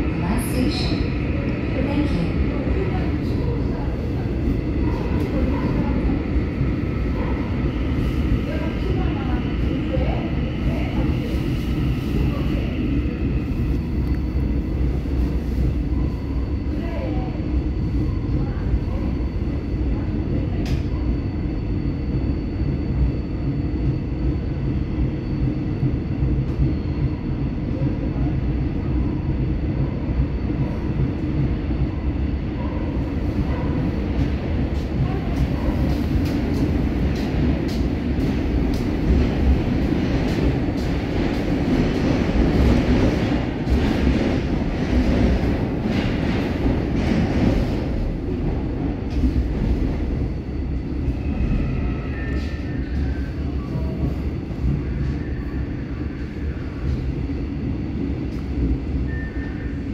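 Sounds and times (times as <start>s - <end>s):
train wheels rumbling: 22.6s - 59.9s
rail clicks and clatter: 32.7s - 50.3s.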